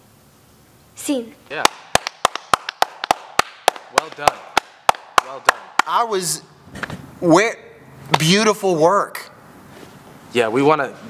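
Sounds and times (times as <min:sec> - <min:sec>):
hand clapping: 0:01.5 - 0:06.1.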